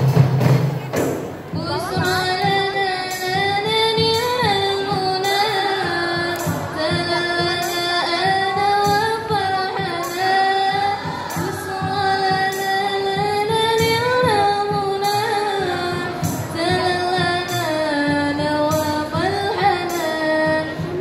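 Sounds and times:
hand-struck frame drums: 0:00.0 - 0:05.2
woman singing melody: 0:01.5 - 0:21.0.

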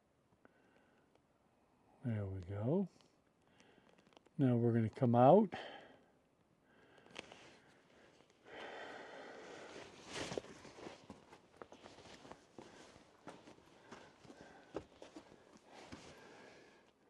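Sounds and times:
close breathing: 0:03.4 - 0:04.1, 0:05.5 - 0:11.1, 0:11.9 - 0:17.0
footsteps and scuffs on rock: 0:09.9 - 0:16.2.

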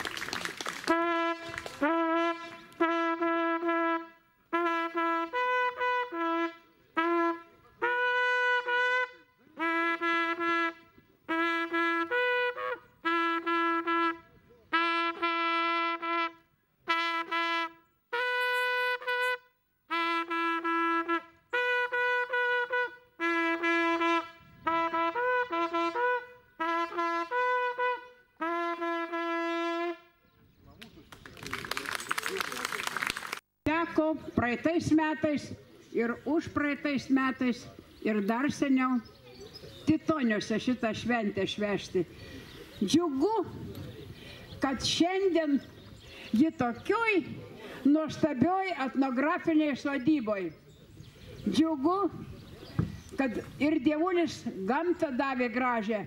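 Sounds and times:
wooden folk horn playing: 0:00.8 - 0:30.2.

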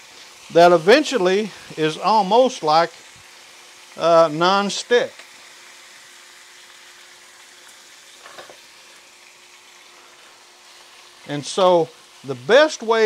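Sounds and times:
bacon sizzling in a skillet: 0:00.0 - 0:13.0.

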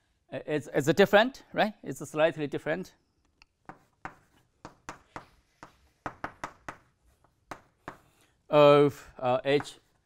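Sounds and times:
chalk tapping on blackboard: 0:03.6 - 0:08.3, 0:09.5 - 0:10.0.

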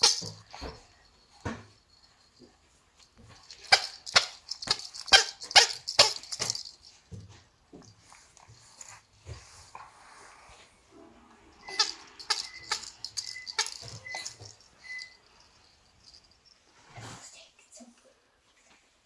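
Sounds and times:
baby rattle toy shaken: 0:00.0 - 0:02.5, 0:03.1 - 0:07.0, 0:11.6 - 0:16.6.

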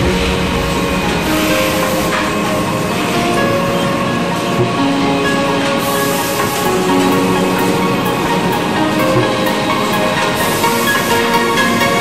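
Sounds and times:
conveyor belts and drives running: 0:00.0 - 0:12.0.

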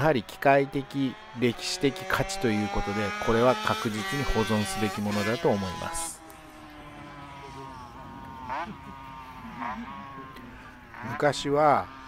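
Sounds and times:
distant two-stroke motorcycle engine: 0:00.0 - 0:12.0.

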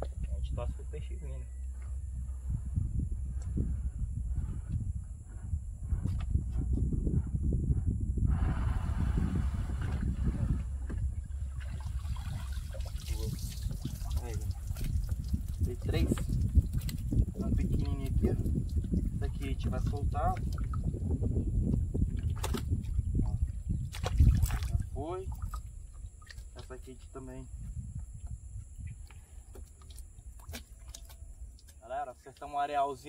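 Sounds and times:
steady low rumble: 0:00.0 - 0:30.4
water sloshing and trickling: 0:09.7 - 0:33.0.

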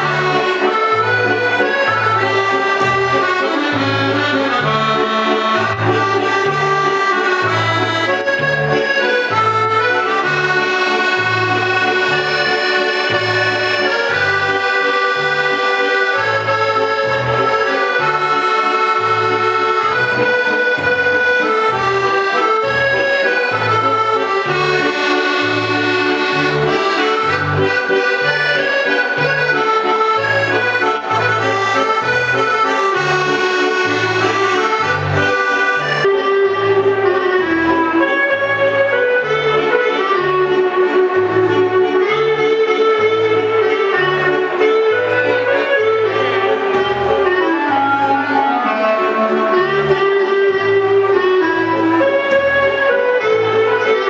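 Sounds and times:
piano accordion playing: 0:00.0 - 0:54.0.

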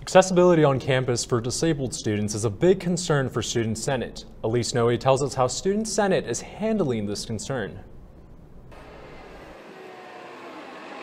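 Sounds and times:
bus engine hum: 0:08.7 - 0:11.0
road noise: 0:08.7 - 0:11.0.

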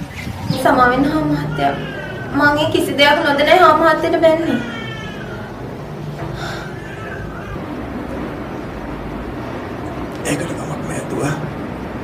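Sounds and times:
faint high mewing calls: 0:04.0 - 0:08.1.

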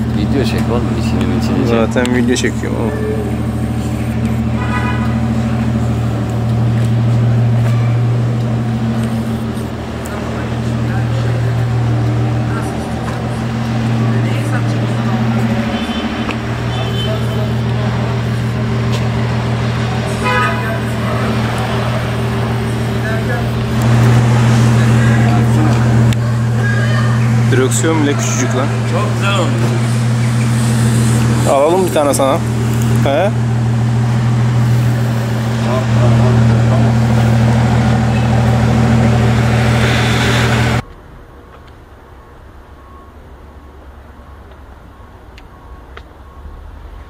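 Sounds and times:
small car engine idling: 0:00.0 - 0:47.0.

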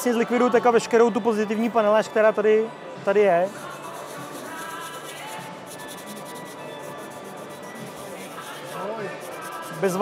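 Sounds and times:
background music: 0:00.0 - 0:10.0
sponge wet sanding plastic: 0:03.5 - 0:10.0.

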